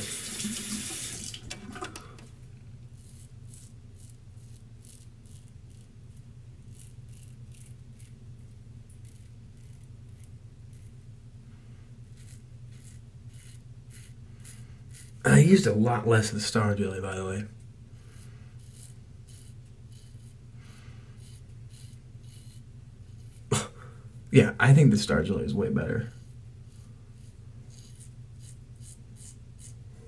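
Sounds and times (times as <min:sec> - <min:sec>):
faucet running: 0:00.0 - 0:02.0
low steady hum: 0:00.0 - 0:30.0
razor scraping stubble: 0:02.9 - 0:11.0, 0:12.1 - 0:15.8, 0:18.0 - 0:23.8, 0:25.8 - 0:29.9.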